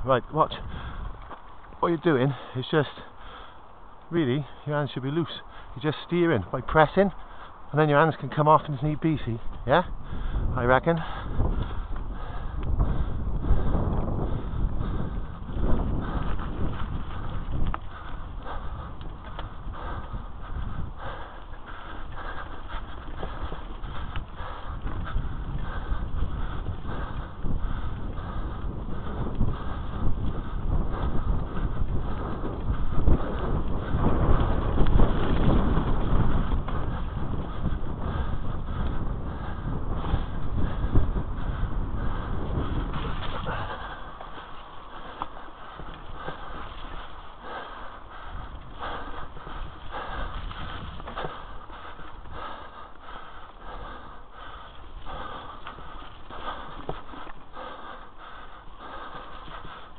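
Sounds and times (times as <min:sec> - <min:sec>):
bike tyres rumbling over dirt: 0:07.2 - 0:59.9
bike rattling and knocking: 0:11.1 - 0:59.9.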